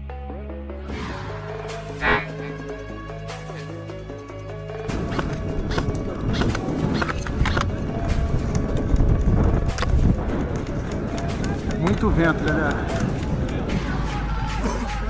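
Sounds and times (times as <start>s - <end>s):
background music: 0.0s - 15.0s
wind rumbling on microphone: 5.0s - 14.3s.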